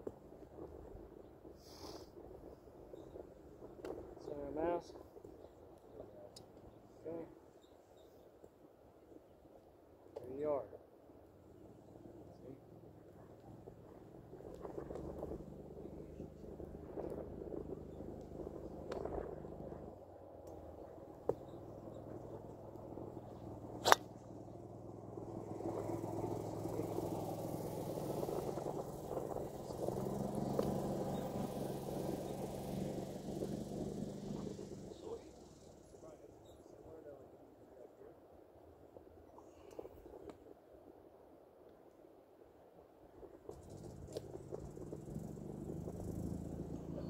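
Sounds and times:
steady low hum: 11.2 - 38.1
golf club striking ball: 23.8 - 24.1.

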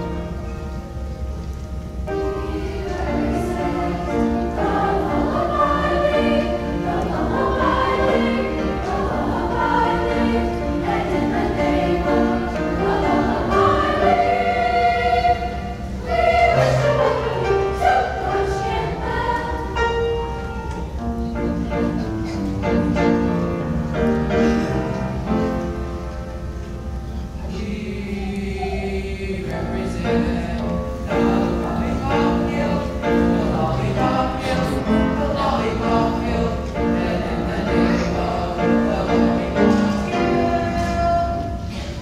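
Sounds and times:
piano accompaniment: 0.0 - 42.0
choir of young voices singing: 2.1 - 26.0, 27.3 - 42.0.

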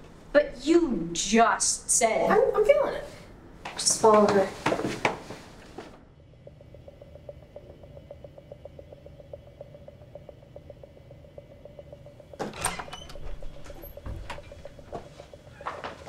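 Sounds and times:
low hum: 5.7 - 15.6
rapid ticking: 6.1 - 15.6
sharp clicks and knocks: 7.3 - 15.4.

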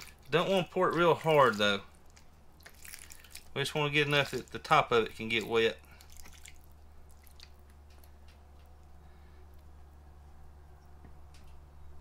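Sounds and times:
water dripping: 0.0 - 8.8
steady low hum: 0.0 - 12.0.

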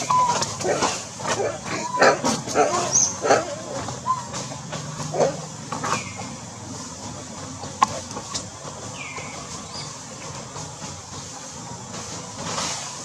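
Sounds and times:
monkey coo calls: 0.0 - 5.4.

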